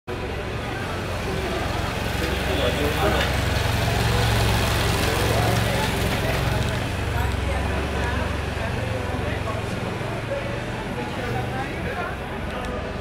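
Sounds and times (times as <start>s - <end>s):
people talking: 0.1s - 13.0s
motorcycle engine passing: 1.1s - 9.4s.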